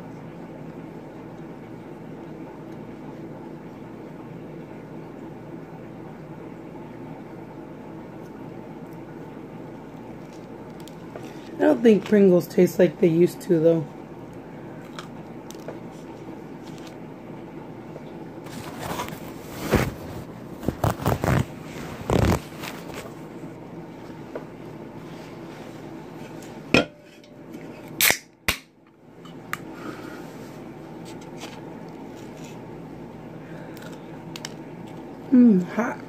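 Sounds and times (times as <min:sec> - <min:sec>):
fish tank hum: 0:00.0 - 0:36.0.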